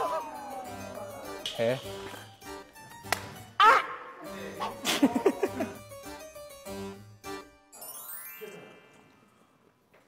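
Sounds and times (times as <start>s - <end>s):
plucked harpsichord-like keyboard music: 4.5s - 8.5s.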